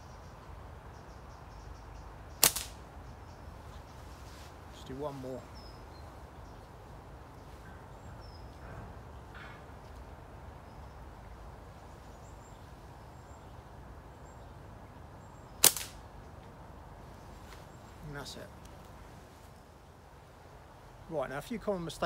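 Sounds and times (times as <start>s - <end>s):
catapult band snap: 2.4s - 2.8s, 15.6s - 16.0s.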